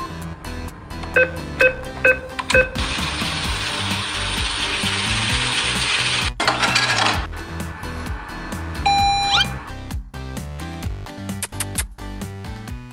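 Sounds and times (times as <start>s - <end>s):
background music: 0.0s - 12.9s
beep: 1.2s - 2.8s, 8.8s - 9.6s.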